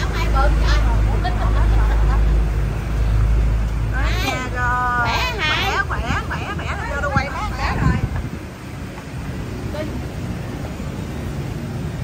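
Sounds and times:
people chattering: 0.0 - 11.4.

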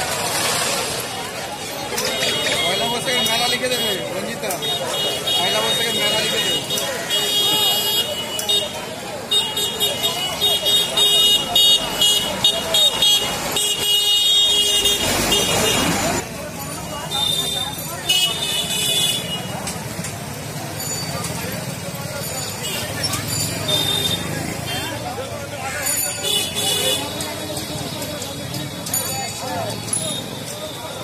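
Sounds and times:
passing motorbikes: 0.0 - 3.0, 19.4 - 31.0
people talking: 0.0 - 31.0.

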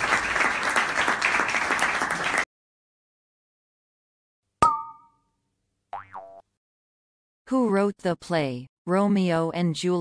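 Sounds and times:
cartoon boing: 6.0 - 6.5.

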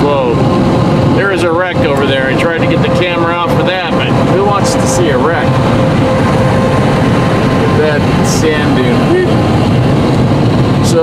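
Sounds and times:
constant hum: 0.0 - 11.0
road and wind noise in a car: 0.0 - 11.0.

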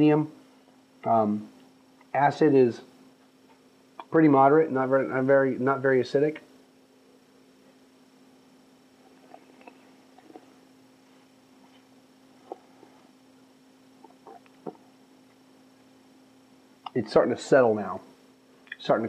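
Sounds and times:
low room hum: 0.0 - 19.0
sipping and swallowing: 14.0 - 14.9.

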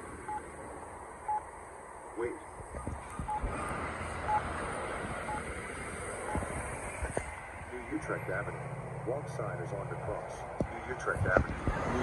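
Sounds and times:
traffic noise: 0.0 - 12.0
pedestrian signal beeps: 3.3 - 3.5, 5.3 - 5.5, 6.3 - 6.5
recorded voice message: 6.3 - 12.0.

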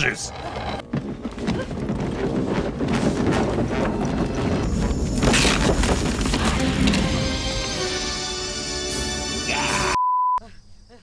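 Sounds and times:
film soundtrack music: 0.0 - 10.0.

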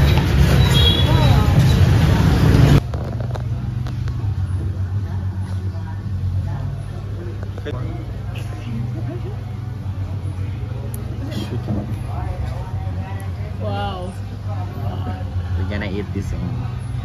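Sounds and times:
people's voices: 0.0 - 17.0
street traffic: 0.0 - 17.0.

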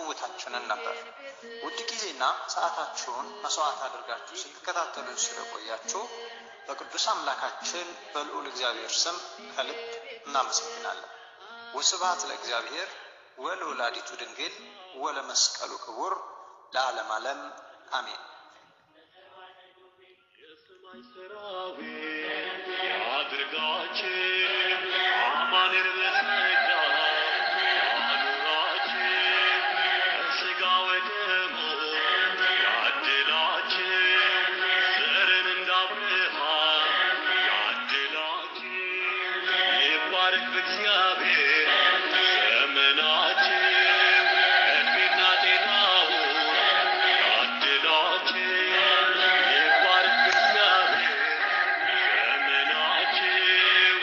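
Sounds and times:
person singing spiritual song: 0.0 - 16.1, 18.9 - 54.0.

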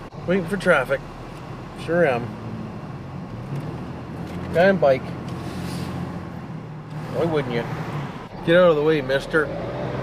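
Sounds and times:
road traffic noise: 0.0 - 10.0
vehicle engine hum: 0.0 - 10.0.

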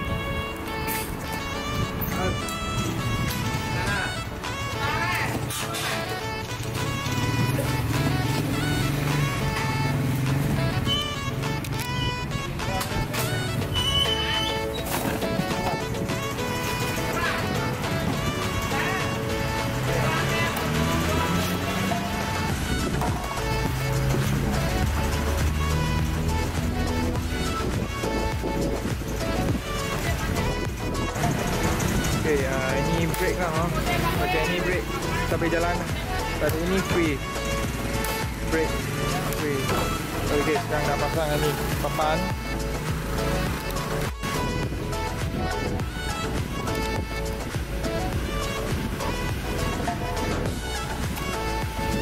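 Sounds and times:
background music with bass notes: 0.0 - 52.0.

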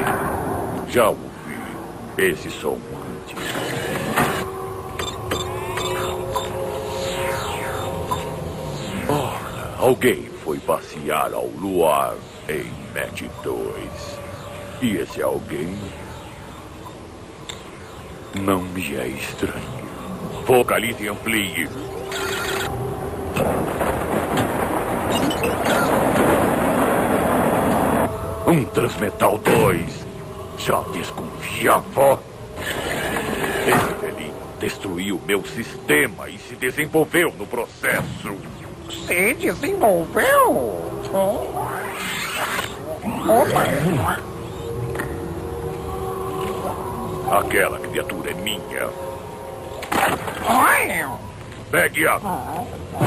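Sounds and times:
steady electronic drone: 0.0 - 53.0
amplified creature screech: 22.0 - 22.7, 41.6 - 43.8.

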